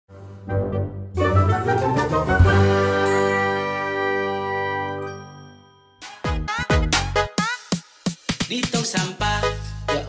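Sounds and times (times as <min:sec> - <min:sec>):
chiming musical jingle: 0:02.5 - 0:06.3.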